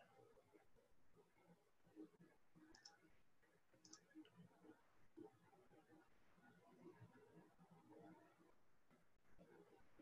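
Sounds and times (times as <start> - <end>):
computer mouse clicks: 2.6 - 3.1, 3.8 - 4.4.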